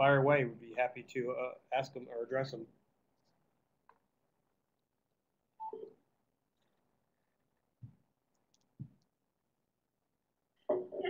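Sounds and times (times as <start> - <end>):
short telephone tone: 5.6 - 6.0.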